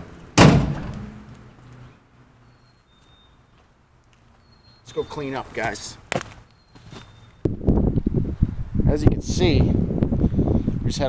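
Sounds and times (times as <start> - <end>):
sharp knock: 0.4 - 1.2
footsteps on forest floor: 2.9 - 7.3.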